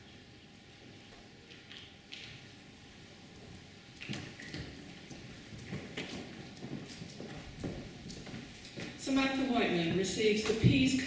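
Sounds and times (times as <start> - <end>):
footsteps on hard floor: 4.1 - 9.0.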